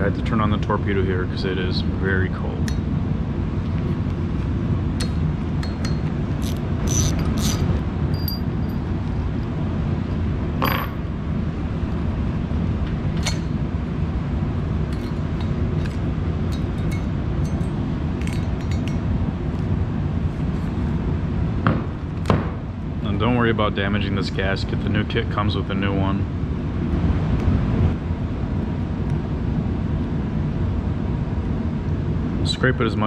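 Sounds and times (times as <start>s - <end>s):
heater humming: 0.0s - 33.0s
bolts and wrench clinking: 5.0s - 8.9s, 10.6s - 11.0s, 13.1s - 13.5s, 14.9s - 19.0s.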